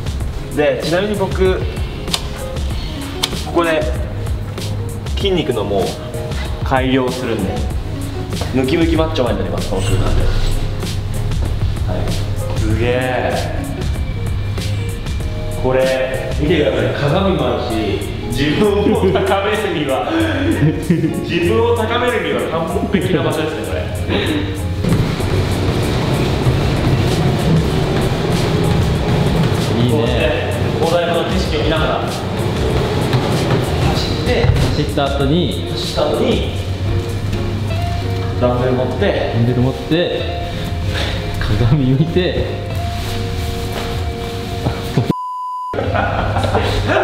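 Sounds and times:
background music: 0:00.0 - 0:47.0
treadmill motor drone: 0:24.8 - 0:30.8, 0:31.4 - 0:34.3
censor beep: 0:45.1 - 0:45.8.

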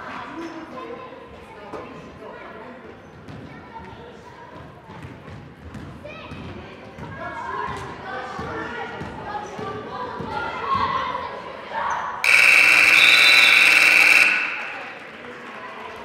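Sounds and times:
scoreboard buzzer: 0:12.3 - 0:15.2.

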